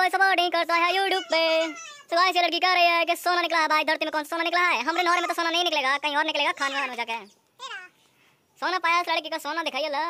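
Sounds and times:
person talking: 0:00.0 - 0:08.0, 0:08.6 - 0:10.0.

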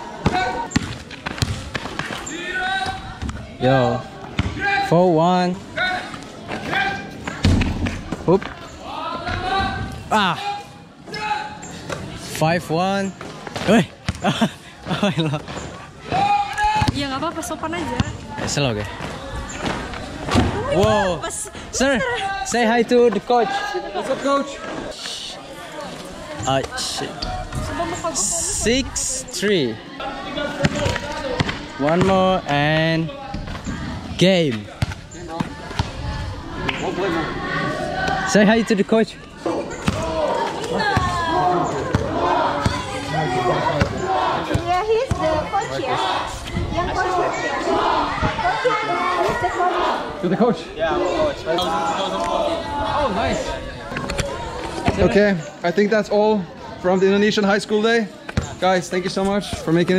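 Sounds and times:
voices: 0:00.0 - 0:59.9
basketball bouncing on pavement: 0:00.2 - 0:02.2, 0:04.2 - 0:04.6, 0:16.7 - 0:21.0, 0:34.7 - 0:36.1, 0:39.8 - 0:40.1, 0:43.8 - 0:45.4.

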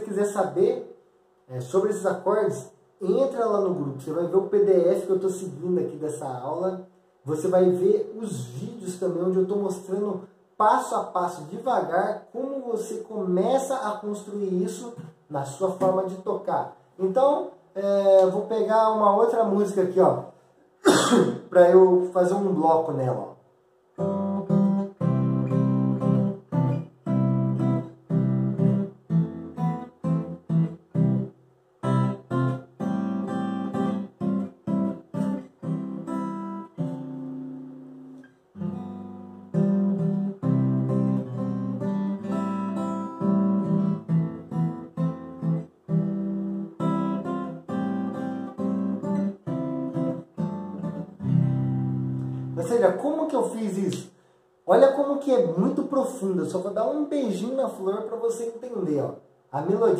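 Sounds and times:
acoustic guitar chord melody: 0:24.0 - 0:52.6.

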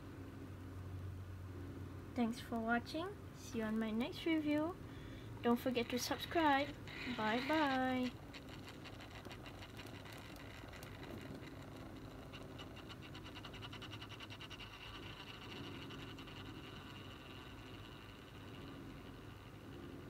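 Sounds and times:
faint motor hum: 0:00.0 - 0:20.0
rapid even ticking: 0:05.4 - 0:20.0.

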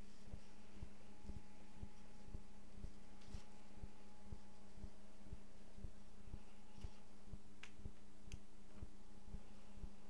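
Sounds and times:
low steady hum with throb: 0:00.0 - 0:10.0.

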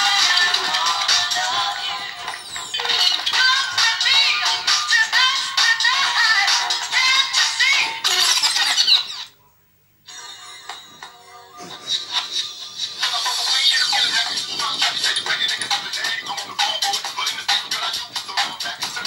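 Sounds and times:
song with singing and beat: 0:00.0 - 0:08.2, 0:12.9 - 0:19.0.

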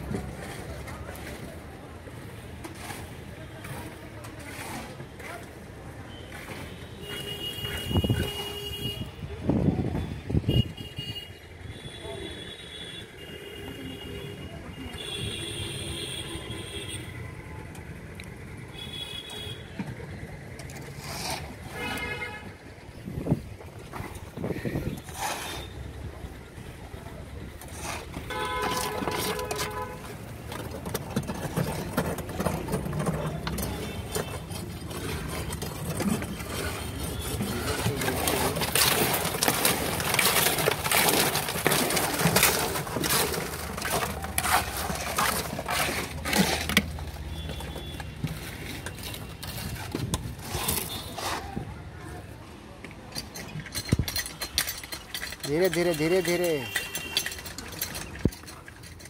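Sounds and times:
wet concrete scraping and clattering: 0:00.0 - 0:10.8, 0:15.9 - 0:59.0
vehicle horn: 0:06.1 - 0:09.2, 0:10.5 - 0:17.1, 0:21.7 - 0:22.6, 0:28.3 - 0:30.1
concrete mixer running: 0:25.0 - 0:51.7.

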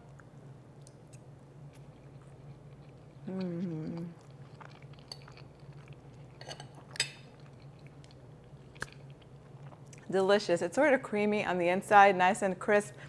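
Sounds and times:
person chewing crisp food: 0:00.1 - 0:10.1.

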